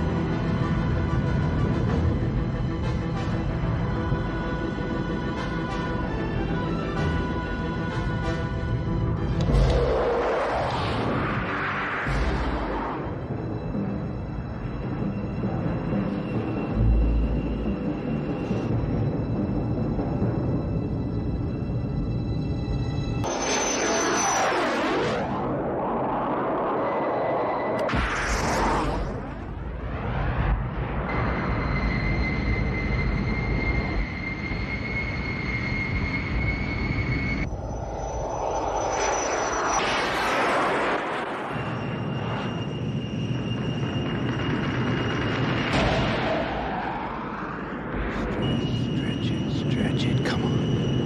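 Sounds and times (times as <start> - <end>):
orchestral film score: 0.0 - 24.7, 39.2 - 51.0
jet engine roar: 9.2 - 16.8, 23.2 - 51.0.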